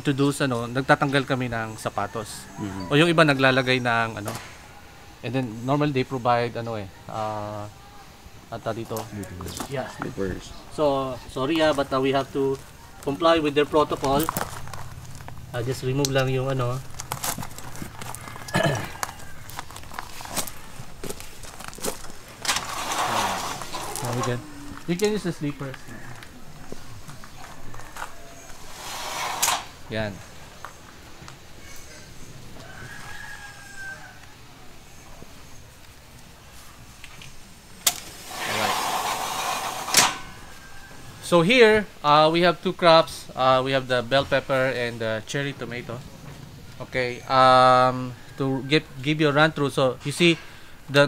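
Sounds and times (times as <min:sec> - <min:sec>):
scraping rush: 0:13.4 - 0:25.4, 0:28.5 - 0:30.2, 0:38.1 - 0:40.8
boots scuffing on gravel: 0:16.6 - 0:24.2
sliding door rushing: 0:22.4 - 0:24.4, 0:28.5 - 0:29.8, 0:37.9 - 0:40.6.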